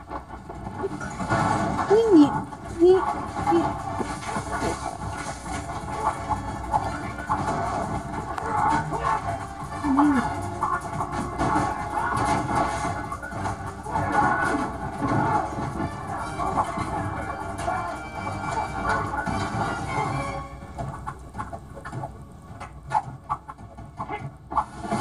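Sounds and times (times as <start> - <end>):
fast action film music: 0.0 - 25.0.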